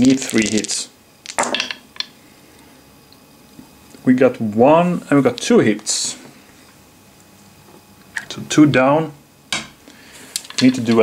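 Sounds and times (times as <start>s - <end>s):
wooden dice clattering in tray: 0.0s - 2.1s.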